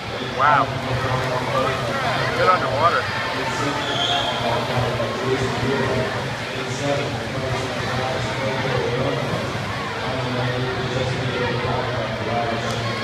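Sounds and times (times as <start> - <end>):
indistinct echoing voices: 0.0 - 13.0.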